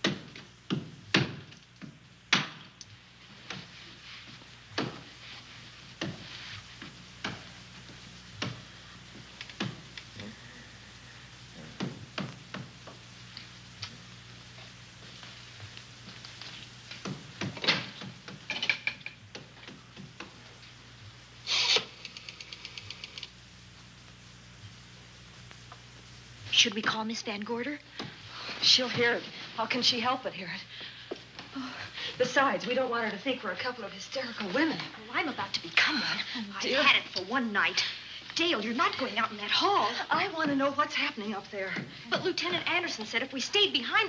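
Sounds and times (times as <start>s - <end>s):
faint steady hum: 0.0s - 44.0s.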